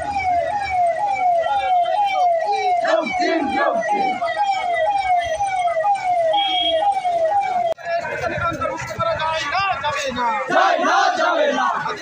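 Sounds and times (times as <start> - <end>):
electronic siren yelping: 0.0 - 7.9
marching crowd voices and shouts: 0.3 - 12.0.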